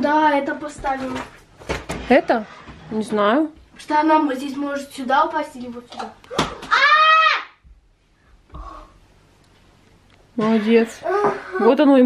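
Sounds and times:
child high-pitched cry: 6.4s - 7.6s, 11.0s - 11.8s.

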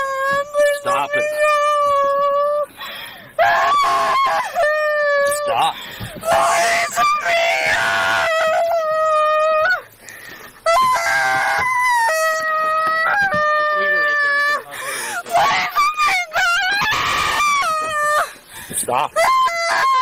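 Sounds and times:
woman wailing: 0.0s - 2.7s, 3.4s - 9.9s, 10.7s - 18.4s, 19.1s - 20.0s
woman screaming: 3.4s - 9.9s, 10.6s - 18.4s, 19.2s - 20.0s.

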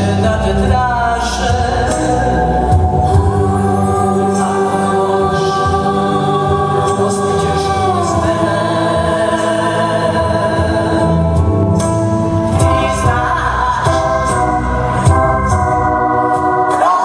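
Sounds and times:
voices singing together: 0.0s - 11.4s, 12.6s - 17.0s
band accompaniment: 0.0s - 17.0s.

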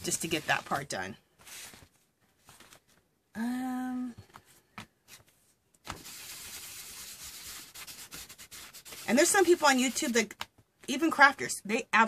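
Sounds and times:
hand rubbing across paper: 0.0s - 2.8s, 5.1s - 10.2s.

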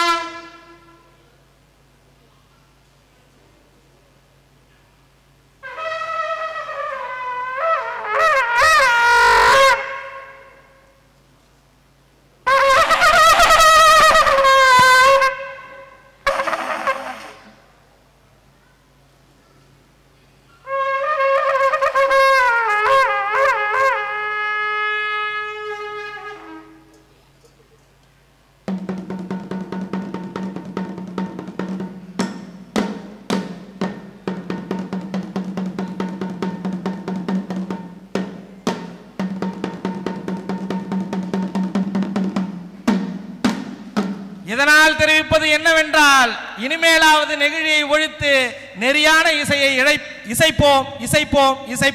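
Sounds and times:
brass horn blast: 0.0s - 1.3s, 5.6s - 11.0s, 12.4s - 17.7s, 20.6s - 27.0s
drums beating rapidly: 28.6s - 45.4s.

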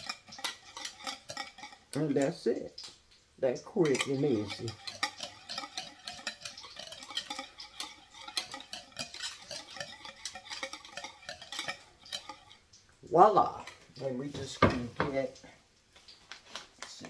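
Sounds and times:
whisk clinking and scraping bowl: 0.0s - 2.6s, 3.6s - 12.7s, 13.4s - 15.2s.

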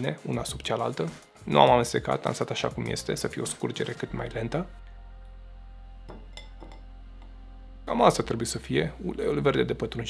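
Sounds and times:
drops clinking in glass bowl: 6.1s - 6.8s.

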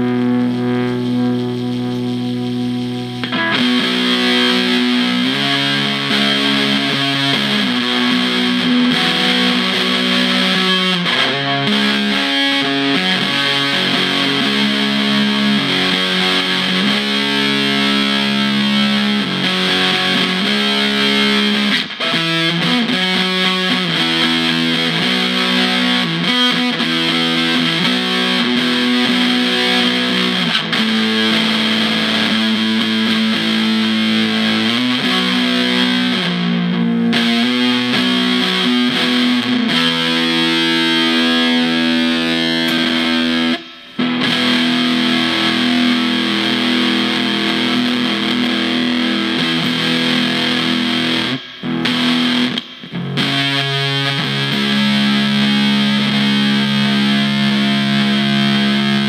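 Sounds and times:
distorted electric guitar chords: 0.0s - 59.0s.

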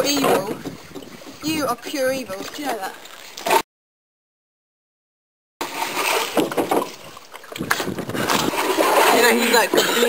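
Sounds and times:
water splashing and sloshing: 0.0s - 3.7s, 5.6s - 10.0s
knocks against canoe hull: 6.1s - 7.0s.

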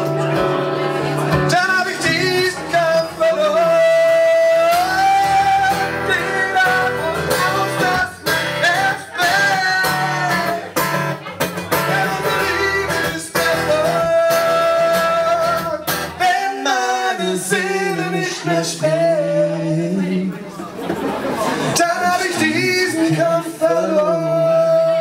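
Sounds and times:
acoustic guitar strumming: 0.0s - 20.5s, 21.6s - 25.0s
men singing: 1.3s - 10.9s, 11.7s - 20.5s, 21.5s - 25.0s.

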